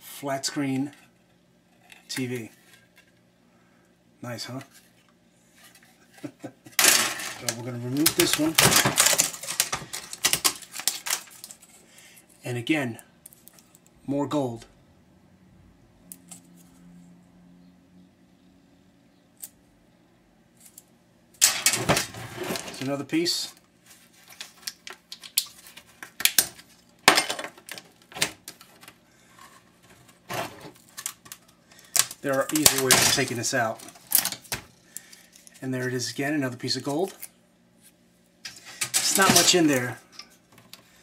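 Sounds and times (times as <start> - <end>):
monitor parts clinking and knocking: 6.8 - 11.3, 21.4 - 22.8, 38.8 - 39.8.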